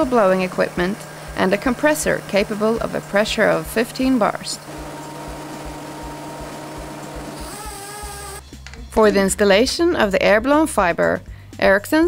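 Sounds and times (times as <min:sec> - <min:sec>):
cable blowing machine whirring: 0:00.0 - 0:08.4.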